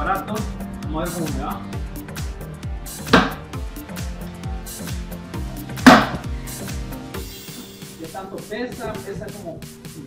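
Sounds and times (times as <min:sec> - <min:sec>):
background music with bass beat: 0:00.0 - 0:10.0
sharp knocks on tile floor: 0:03.1 - 0:03.4, 0:05.8 - 0:06.3.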